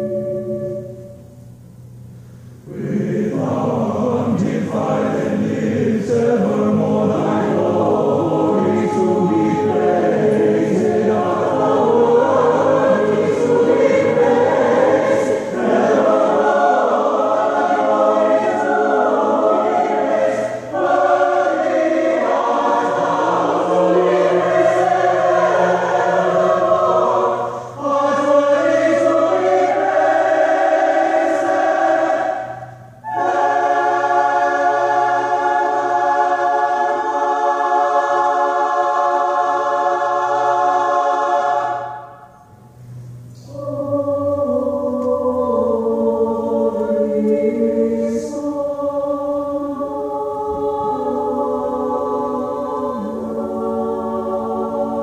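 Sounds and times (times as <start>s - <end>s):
choir singing sacred piece: 0.0s - 1.4s, 2.6s - 55.0s.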